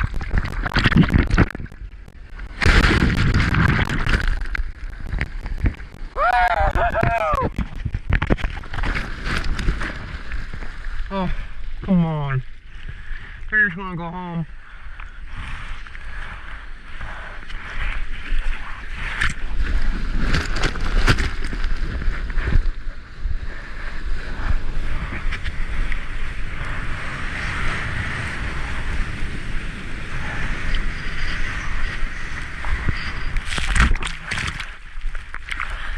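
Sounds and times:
deep rumble: 0:00.0 - 0:12.5
ocean surf and splashing water: 0:00.0 - 0:13.5, 0:24.8 - 0:35.9.

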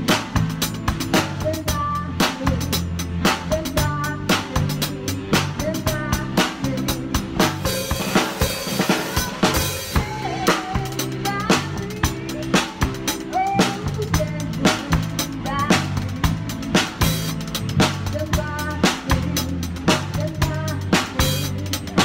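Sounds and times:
drum kit rock beat: 0:00.0 - 0:22.0
recorded song with bass: 0:00.0 - 0:22.0.

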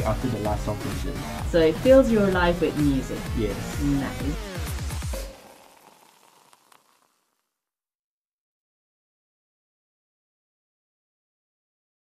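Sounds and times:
faint hiss: 0:05.2 - 0:07.4.

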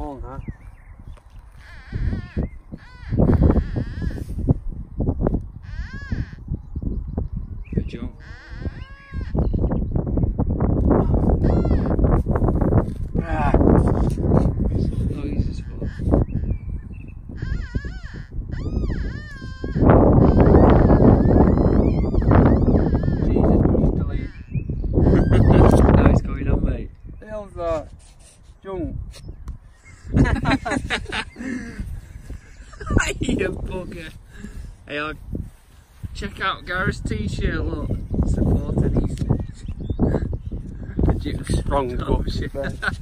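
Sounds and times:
high-pitched animal-like calls: 0:01.5 - 0:04.4, 0:05.6 - 0:06.5, 0:08.2 - 0:09.7, 0:11.4 - 0:12.0, 0:17.3 - 0:26.0.

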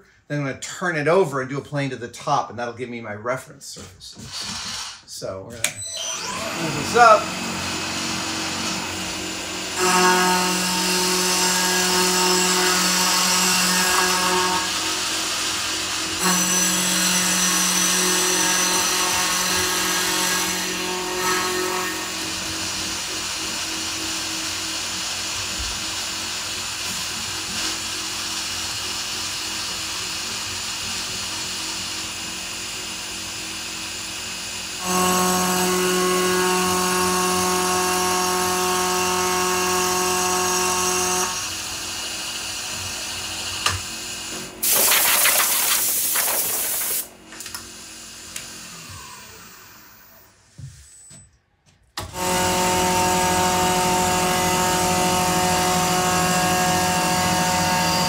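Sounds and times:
milling machine cutting wood: 0:06.0 - 0:50.2, 0:52.0 - 0:58.0.

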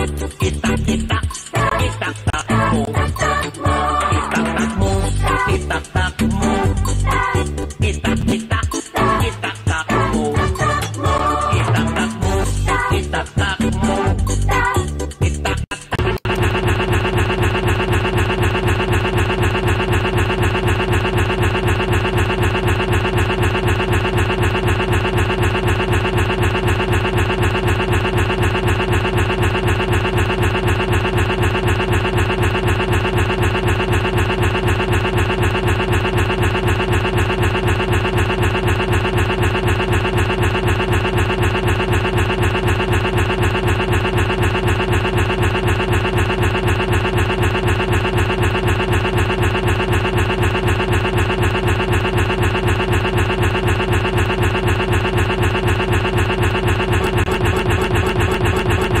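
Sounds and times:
looping audio buzzing stutter: 0:00.0 - 0:59.0.

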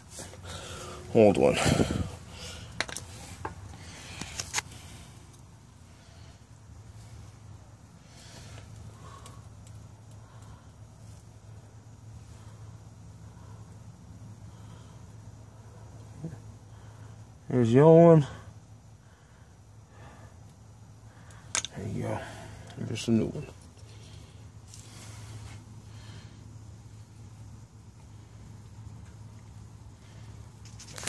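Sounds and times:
faint low hum: 0:00.0 - 0:31.0.

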